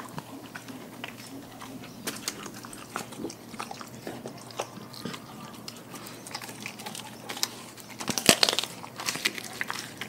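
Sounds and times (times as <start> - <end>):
dog chewing raw fish: 0.0 - 10.0.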